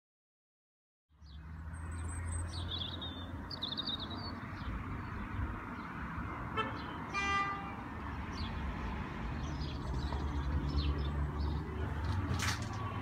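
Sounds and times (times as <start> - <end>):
low traffic rumble: 1.1 - 13.0
small birds chirping: 1.2 - 6.1, 8.0 - 12.3.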